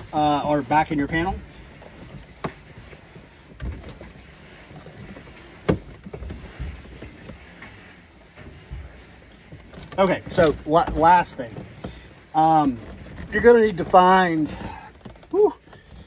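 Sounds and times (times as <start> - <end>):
wires rustling and knocking: 0.0 - 16.0.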